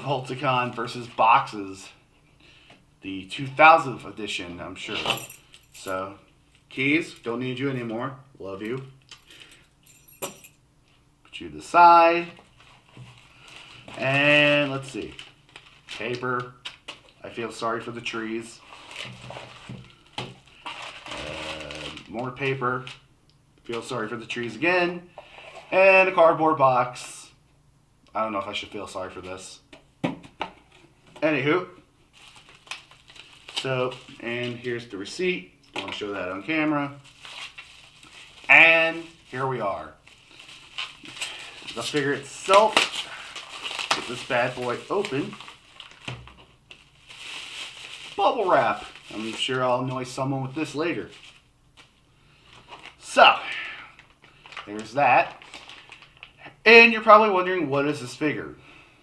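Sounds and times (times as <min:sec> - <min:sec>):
bubble wrap crinkling: 0:12.2 - 0:17.5, 0:18.1 - 0:23.0, 0:32.0 - 0:34.9, 0:35.8 - 0:56.5
packing paper rustling: 0:12.2 - 0:23.0, 0:32.0 - 0:34.9, 0:35.8 - 0:56.4
person saying uh: 0:21.1 - 0:22.3.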